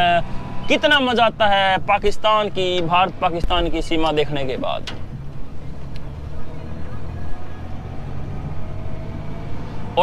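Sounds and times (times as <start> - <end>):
road noise: 0.0 - 10.0
vehicle engine drone: 0.0 - 10.0.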